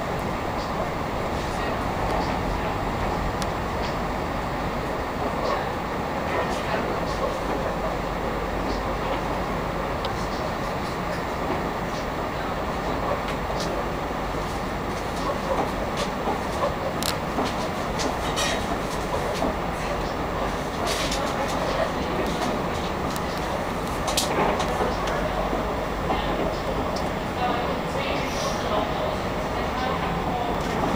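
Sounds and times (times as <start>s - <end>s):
train rumble and rattle: 0.0s - 30.9s.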